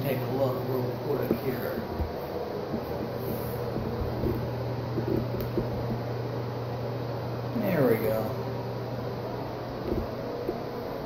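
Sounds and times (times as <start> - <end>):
low mechanical hum: 0.0 - 11.0.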